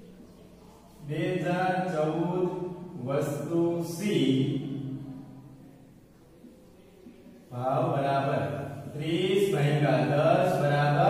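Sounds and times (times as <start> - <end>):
man speaking: 1.0 - 5.0, 7.5 - 11.0.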